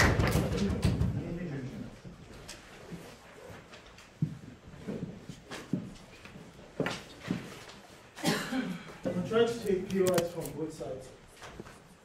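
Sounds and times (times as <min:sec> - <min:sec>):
person coughing: 0:08.2 - 0:09.1.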